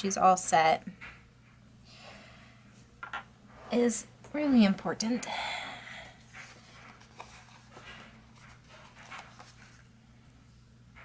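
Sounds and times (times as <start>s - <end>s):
sticker sheet rustling: 6.4s - 9.8s.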